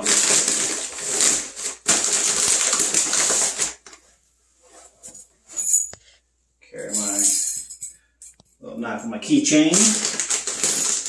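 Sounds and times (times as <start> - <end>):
plastic bag crinkling: 0.0 - 4.0, 9.6 - 11.0
keys jingling: 6.8 - 8.4.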